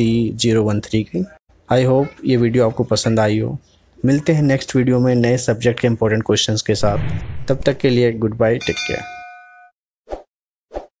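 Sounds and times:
notification bell chime: 8.6 - 9.7.

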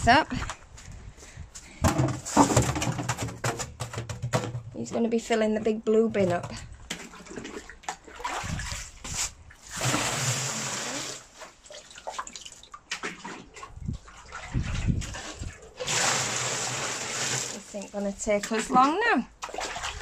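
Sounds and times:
water pouring into plastic bin: 7.0 - 17.9.

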